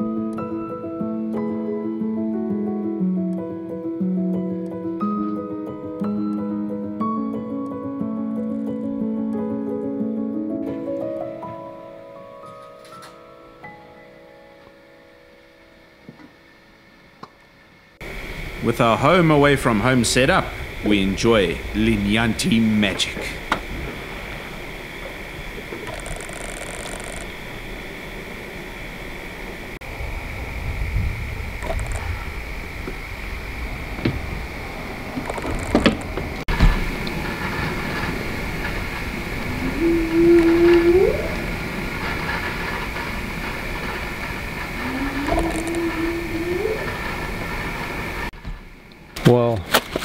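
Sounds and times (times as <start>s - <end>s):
insects chirring: 13.4s - 49.2s
rising whooping animal calls: 38.2s - 48.3s.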